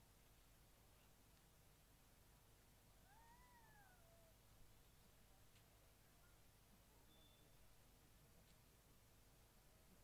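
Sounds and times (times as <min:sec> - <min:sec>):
faint meow-like call: 0:03.0 - 0:04.4.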